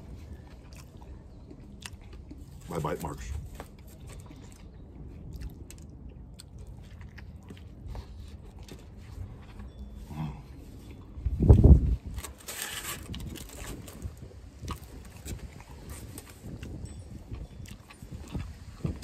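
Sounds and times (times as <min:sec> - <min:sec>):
man chewing food: 0:00.0 - 0:02.7, 0:03.4 - 0:19.0.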